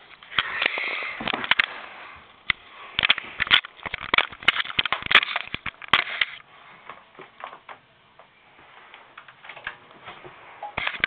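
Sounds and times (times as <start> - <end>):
camcorder handling crackles: 3.0 - 6.4.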